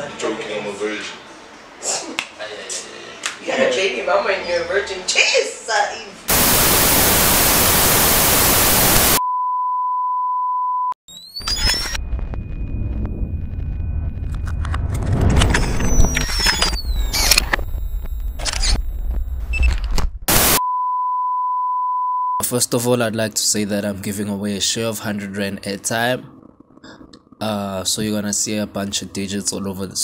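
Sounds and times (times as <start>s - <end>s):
tv static hiss: 5.9s - 9.2s, 15.8s - 19.6s, 20.3s - 20.6s
glitchy logo sting: 11.1s - 19.7s.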